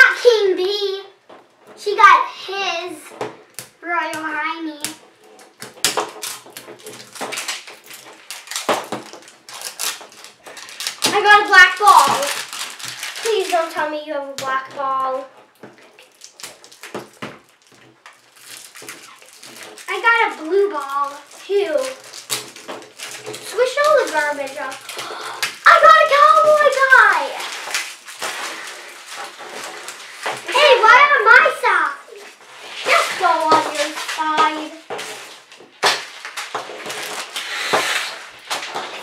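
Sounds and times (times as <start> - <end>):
child voices: 0.0 - 1.2, 1.8 - 3.1, 3.8 - 5.0, 11.0 - 12.4, 13.2 - 15.3, 19.9 - 22.0, 23.4 - 27.5, 30.5 - 34.8
plastic wrapper crinkling and tearing: 3.4 - 39.0.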